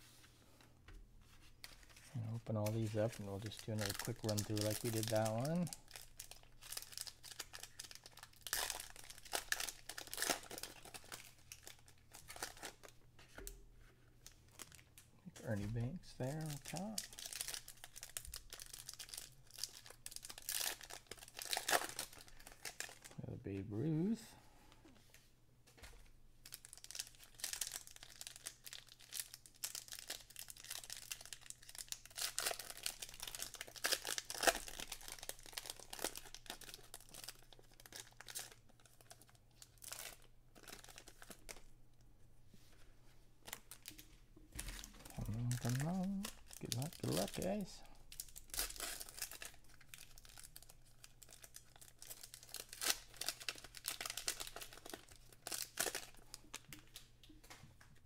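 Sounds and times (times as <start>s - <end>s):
foil wrappers crinkling and tearing: 1.6s - 13.0s, 16.2s - 23.2s, 26.4s - 41.7s, 44.6s - 57.1s.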